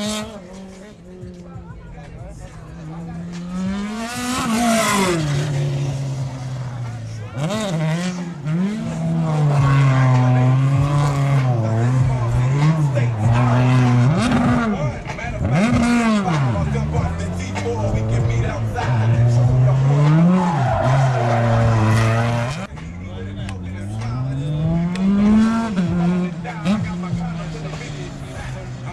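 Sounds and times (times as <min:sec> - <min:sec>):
race car engine revving: 0:00.0 - 0:28.9
tyres squealing: 0:17.2 - 0:22.7.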